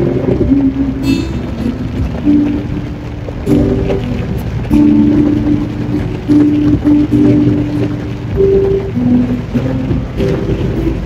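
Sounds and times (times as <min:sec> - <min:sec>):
acoustic guitar: 0:00.0 - 0:11.0
heavy rain on car roof: 0:00.0 - 0:11.0.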